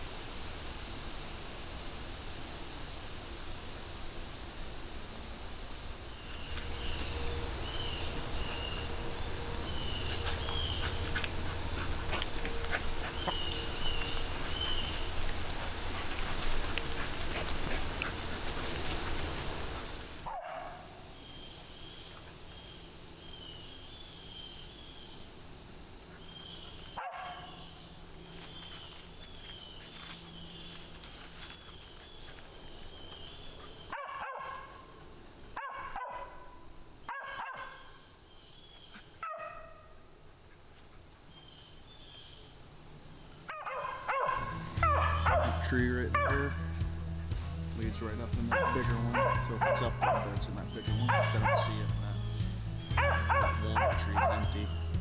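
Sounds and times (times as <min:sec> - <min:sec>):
dog barking: 0:20.2 - 0:20.9, 0:27.0 - 0:27.6, 0:33.9 - 0:34.8, 0:35.6 - 0:37.9, 0:39.2 - 0:39.9, 0:43.5 - 0:45.6, 0:46.2 - 0:46.5, 0:48.5 - 0:50.4, 0:51.0 - 0:51.9, 0:53.0 - 0:54.6.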